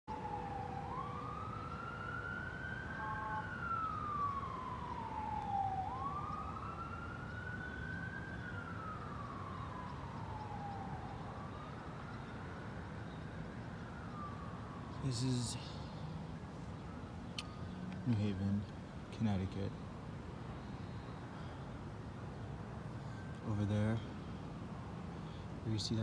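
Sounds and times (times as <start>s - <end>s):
distant siren wailing: 0.1s - 25.9s.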